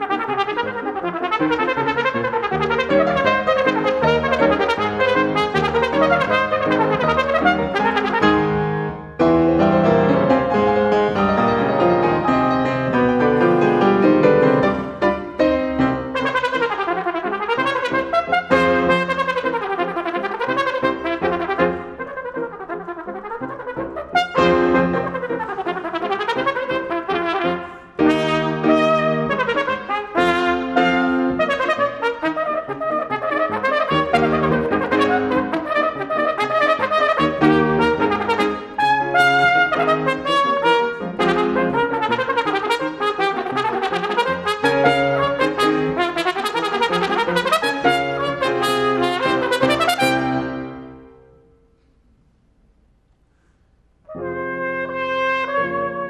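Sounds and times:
solo trumpet: 0:00.0 - 0:13.2, 0:14.2 - 0:51.7, 0:54.0 - 0:56.0
piano accompaniment: 0:00.0 - 0:51.8, 0:54.1 - 0:56.0.

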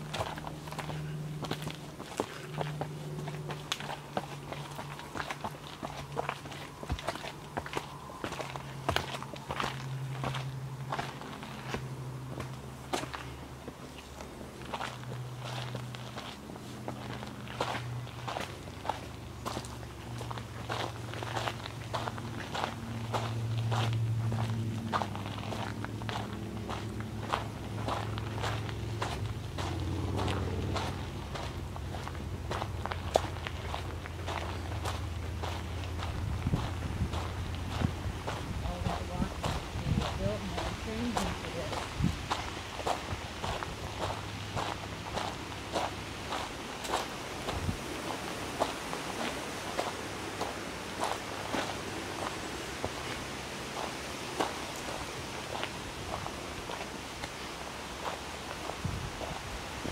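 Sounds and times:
footsteps on stone and dirt: 0:00.0 - 0:59.9
low steady hum: 0:00.0 - 0:59.9.

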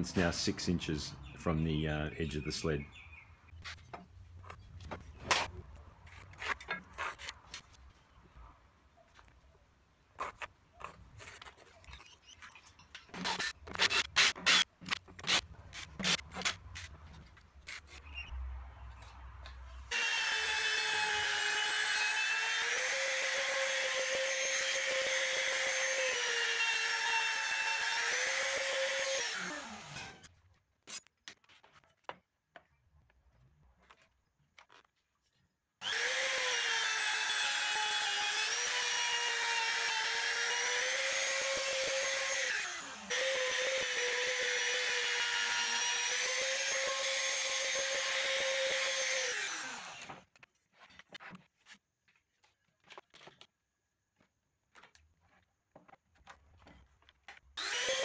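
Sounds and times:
trim router whining: 0:35.8 - 0:50.2, 0:57.6 - 0:58.0.

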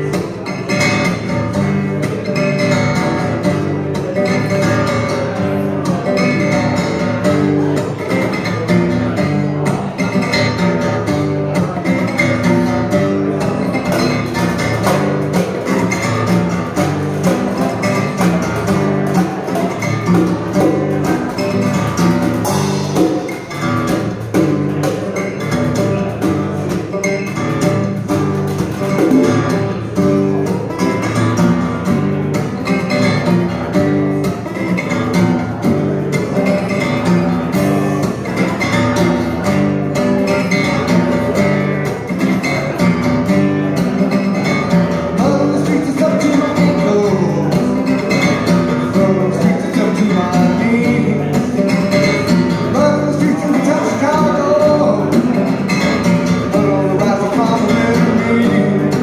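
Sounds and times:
acoustic guitar strummed: 0:00.0 - 0:59.0.

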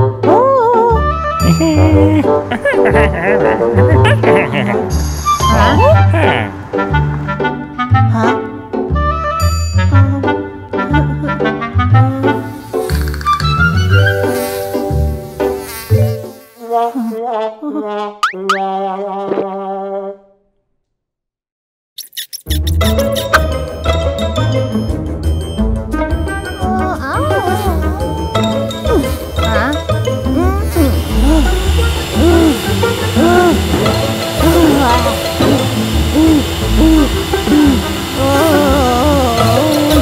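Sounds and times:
background music: 0:00.0 - 0:16.0, 0:22.6 - 0:40.0
cartoon housefly buzzing: 0:11.4 - 0:17.5, 0:22.0 - 0:24.6, 0:26.2 - 0:40.0
cartoon voice panting groans: 0:30.4 - 0:33.7, 0:36.1 - 0:40.0.

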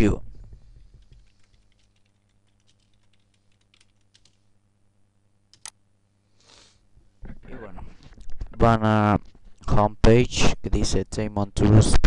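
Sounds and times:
computer keyboard typing: 0:00.7 - 0:04.4, 0:05.5 - 0:05.8.

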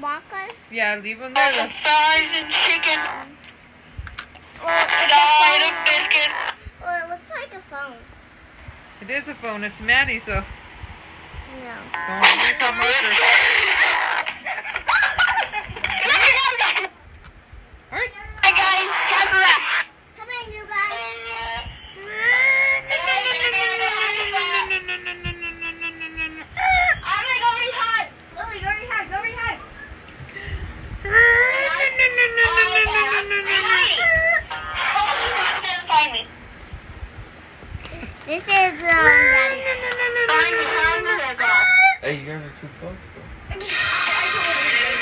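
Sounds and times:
high-pitched playful vocalizing: 0:22.1 - 0:27.1, 0:31.0 - 0:35.7, 0:43.6 - 0:45.0
short high squeal: 0:43.6 - 0:45.0.

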